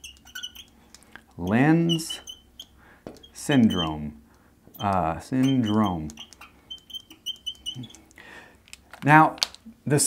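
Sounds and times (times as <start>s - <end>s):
marker ticks on glass: 0.0s - 4.0s, 4.8s - 8.2s
marker squeaking on glass: 0.0s - 8.2s.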